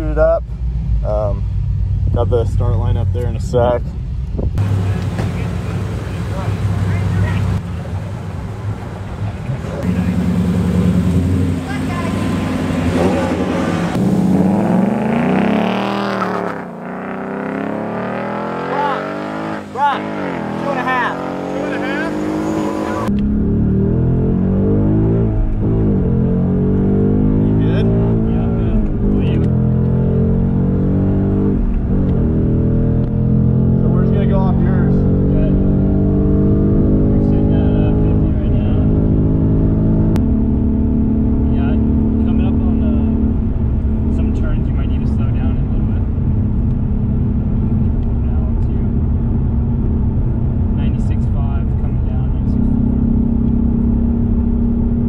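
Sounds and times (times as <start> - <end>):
car engine accelerating hard: 4.6 - 55.0.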